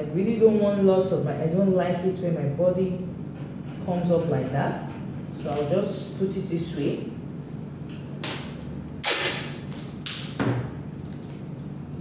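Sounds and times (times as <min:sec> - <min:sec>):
tape ripping off roll: 0:09.0 - 0:10.4.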